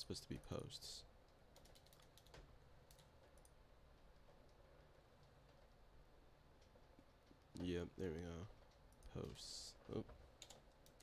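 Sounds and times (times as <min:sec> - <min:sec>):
faint keyboard typing: 0:01.2 - 0:11.0.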